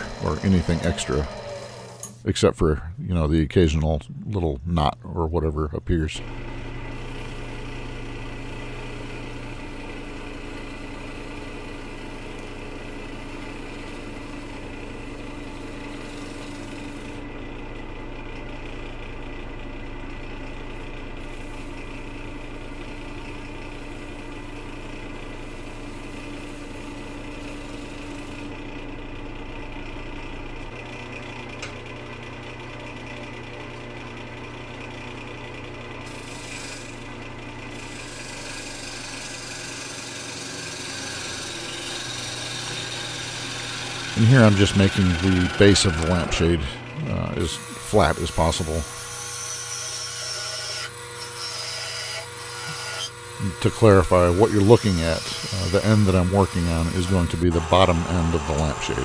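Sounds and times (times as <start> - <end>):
gouge cutting wood shavings: 0.0 - 2.1, 13.2 - 17.2, 25.3 - 28.5, 36.1 - 37.0, 37.7 - 59.0
wood lathe motor humming: 0.0 - 2.2, 6.2 - 59.0.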